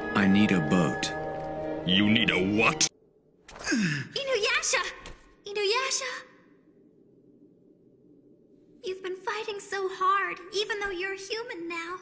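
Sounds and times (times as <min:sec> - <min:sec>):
faint steady hum: 0:05.4 - 0:12.0.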